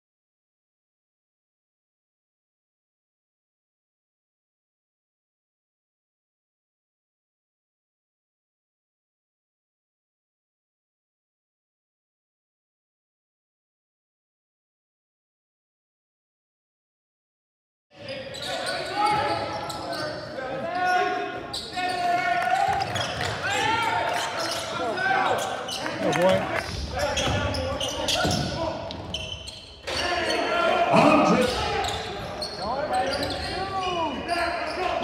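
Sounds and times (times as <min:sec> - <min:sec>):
players shouting: 0:18.4 - 0:28.6, 0:29.8 - 0:35.0.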